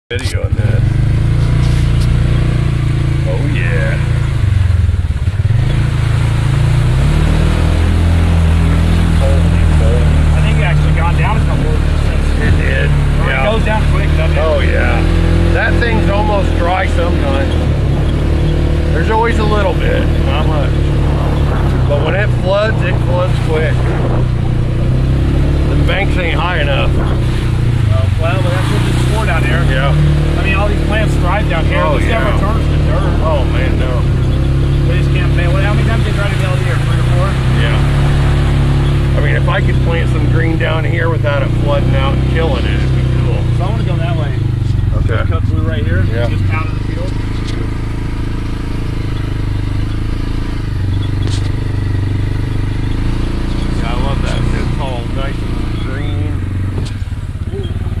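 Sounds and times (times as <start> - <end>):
off-road vehicle engine running: 0.0 - 58.0.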